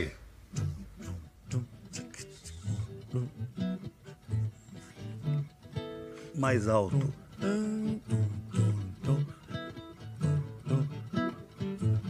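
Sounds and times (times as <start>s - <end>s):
nylon-string acoustic guitar playing: 0.5s - 12.0s.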